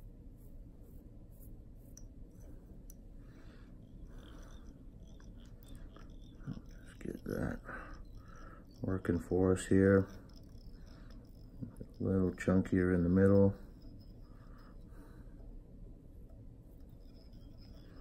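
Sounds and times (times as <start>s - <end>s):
man speaking: 12.0s - 13.6s.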